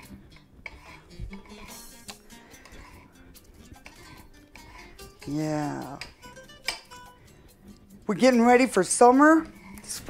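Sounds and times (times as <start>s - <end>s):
faint background music: 0.0s - 10.0s
knife tapping on stone board: 6.0s - 6.9s.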